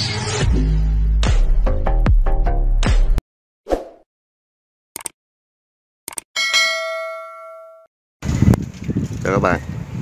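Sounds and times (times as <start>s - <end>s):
bell-like notification ding: 6.4s - 7.9s.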